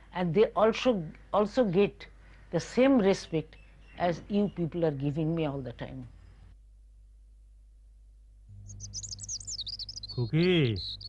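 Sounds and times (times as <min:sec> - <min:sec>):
low steady hum: 0:04.0 - 0:10.8
small bird twittering: 0:08.6 - 0:11.0.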